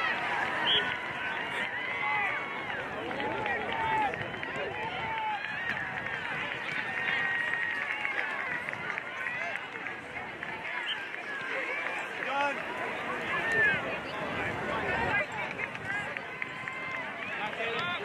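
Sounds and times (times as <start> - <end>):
crowd calling and shouting: 0.0 - 18.0.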